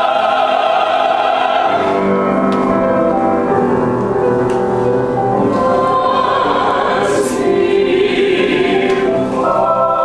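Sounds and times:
opera ensemble singing: 0:00.0 - 0:02.2, 0:05.4 - 0:10.0
piano accompaniment: 0:00.0 - 0:10.0.

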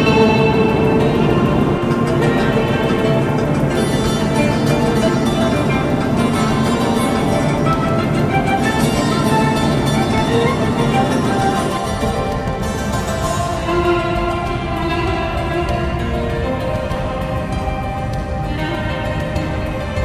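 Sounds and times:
background music with held notes: 0:00.0 - 0:20.0.

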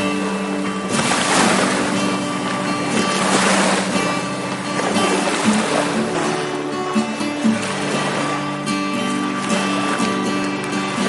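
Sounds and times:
background music steady notes: 0:00.0 - 0:11.0
small waves washing on beach: 0:00.0 - 0:11.0.

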